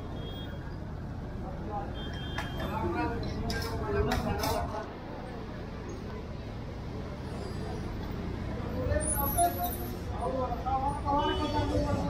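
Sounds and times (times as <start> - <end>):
low traffic rumble: 0.0 - 12.0
people talking: 2.6 - 5.0.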